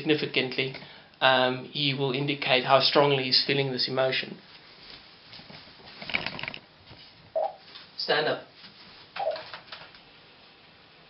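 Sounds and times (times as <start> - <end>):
robot joint motors buzzing and clicking: 6.0 - 6.6.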